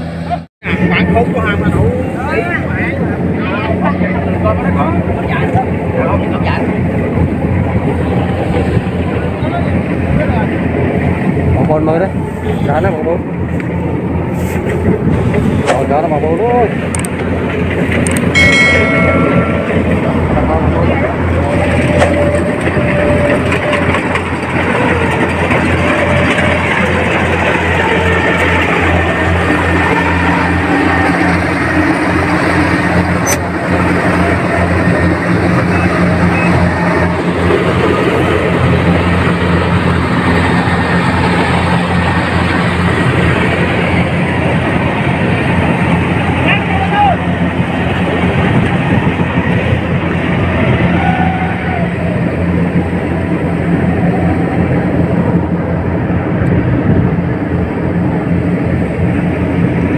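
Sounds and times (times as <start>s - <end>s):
combine harvester engine drone: 0.0s - 59.9s
people's voices: 0.1s - 56.7s.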